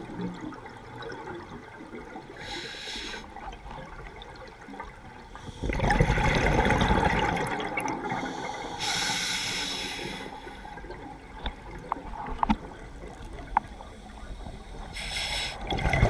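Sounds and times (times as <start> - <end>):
gurgling bubbles of exhalation: 5.6 - 8.3, 15.6 - 16.0
hissing regulator inhalation: 8.2 - 10.6, 15.0 - 15.6.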